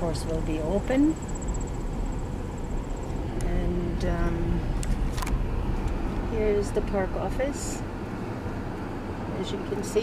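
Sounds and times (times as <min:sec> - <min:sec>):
engine and tyre rumble: 0:00.0 - 0:10.0
faint high pulsing trill: 0:00.2 - 0:03.0.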